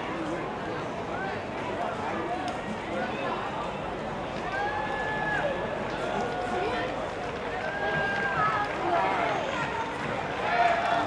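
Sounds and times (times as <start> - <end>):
background hubbub: 0.0 - 11.0.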